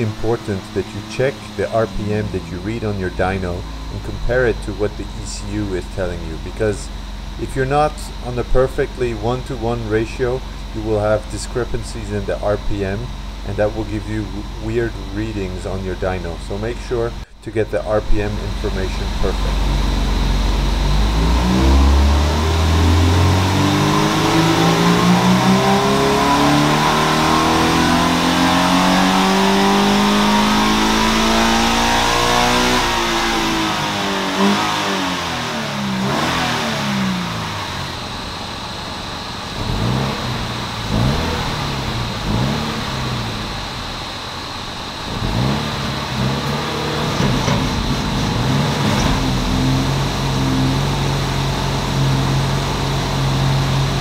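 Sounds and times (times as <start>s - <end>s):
car engine idling: 0.0s - 54.0s
car engine revving on a dyno: 0.0s - 54.0s.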